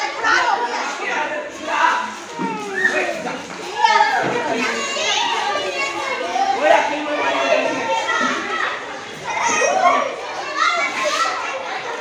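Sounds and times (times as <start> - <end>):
children shouting at play: 0.0 - 12.0.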